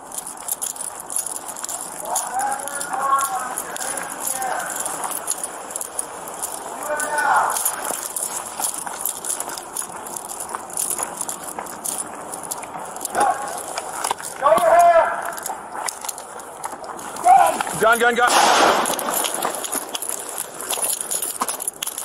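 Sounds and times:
equipment rattling: 0:00.0 - 0:22.0
footsteps crunching on gravel: 0:00.0 - 0:22.0
person speaking: 0:01.6 - 0:21.1.

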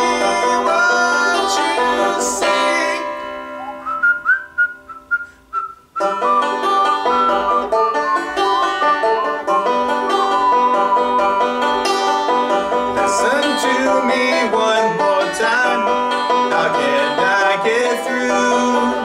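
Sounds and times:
banjo picking and strumming: 0:00.0 - 0:04.7, 0:06.0 - 0:19.0
whistled melody: 0:03.3 - 0:09.4, 0:10.1 - 0:12.2.

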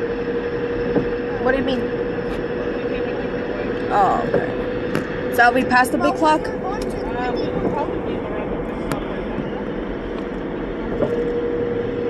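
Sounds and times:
constant hum: 0:00.0 - 0:12.0
vehicle travel rush: 0:00.0 - 0:12.0.

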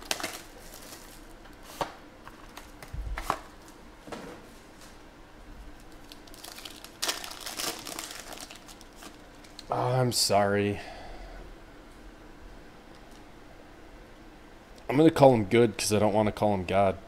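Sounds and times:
foil wrapper crinkling and tearing: 0:00.0 - 0:01.7, 0:05.8 - 0:09.7.

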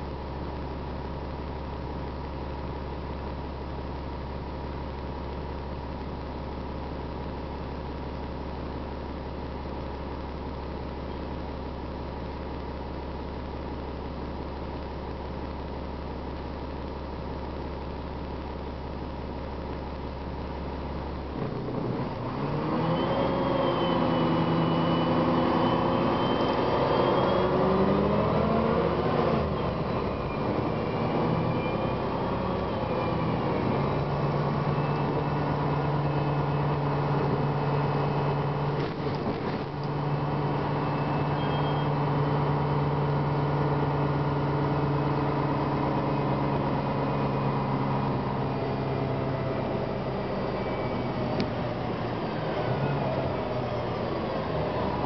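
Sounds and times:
bus engine pulling away: 0:21.3 - 0:55.0.

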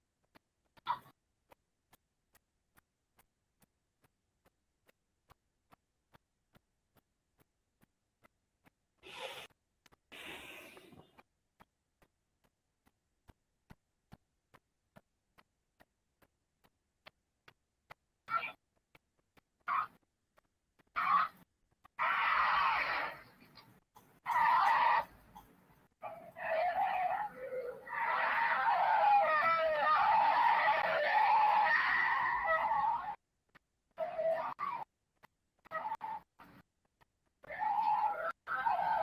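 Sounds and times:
animals snarling and growling: 0:22.0 - 0:23.3, 0:26.0 - 0:33.2, 0:37.4 - 0:39.0.

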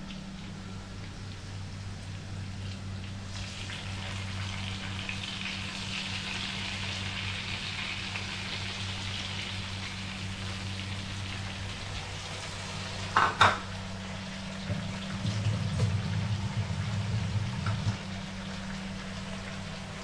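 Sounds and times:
food sizzling in hot oil: 0:03.3 - 0:20.0
low hum: 0:13.7 - 0:20.0.

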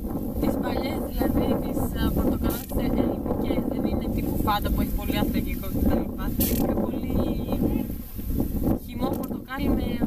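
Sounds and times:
wind buffeting microphone: 0:00.0 - 0:10.0
woman's voice: 0:00.4 - 0:08.0, 0:08.7 - 0:10.0.

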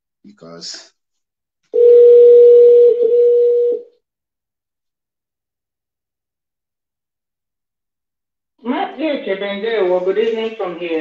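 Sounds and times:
telephone ringback tone: 0:01.8 - 0:03.9.

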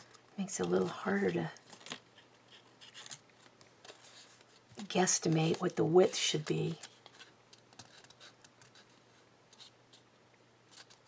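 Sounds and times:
paper rustling and scraping: 0:00.0 - 0:10.1, 0:10.7 - 0:11.0.

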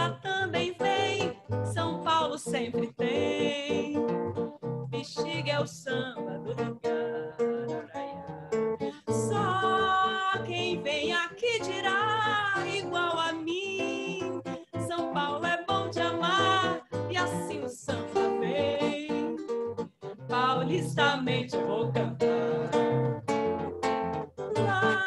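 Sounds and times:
acoustic guitar plucking: 0:00.0 - 0:25.0.

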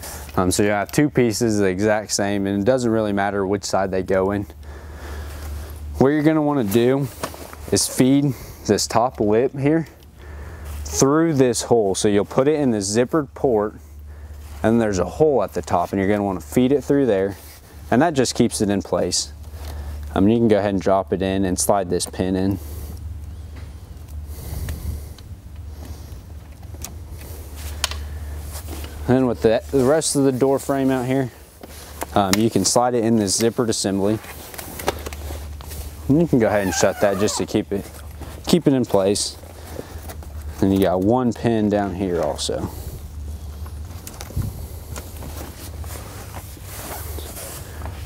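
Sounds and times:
steady low hum: 0:00.0 - 0:48.0
fabric rustling: 0:34.1 - 0:38.4.

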